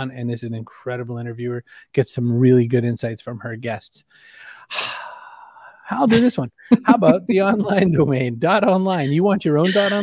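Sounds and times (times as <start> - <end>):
person sighing: 9.7 - 10.0.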